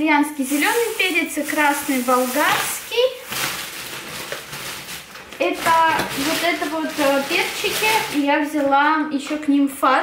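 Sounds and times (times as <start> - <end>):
plastic bags rustling and crinkling: 0.1 - 9.1.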